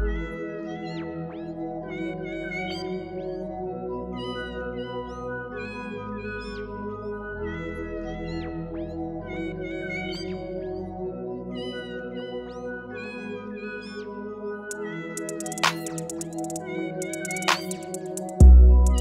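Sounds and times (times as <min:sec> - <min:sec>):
music with held chords: 0:14.7 - 0:19.0.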